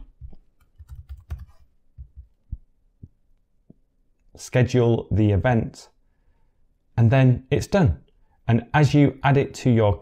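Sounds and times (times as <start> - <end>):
computer keyboard typing: 0.6 - 1.6.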